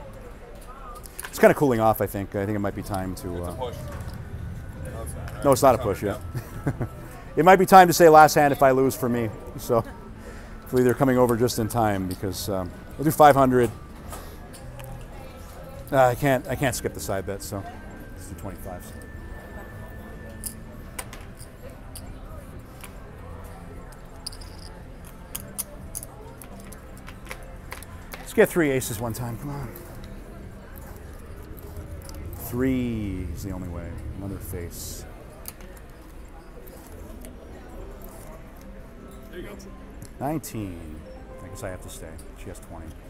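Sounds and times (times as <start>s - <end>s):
low casino hum: 0.0s - 43.0s
murmur of background voices: 0.0s - 43.0s.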